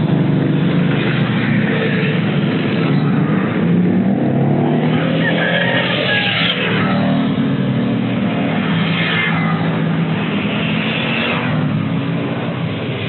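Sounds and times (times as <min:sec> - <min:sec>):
cars passing: 0:00.0 - 0:13.0
motorcycles passing: 0:00.0 - 0:13.0.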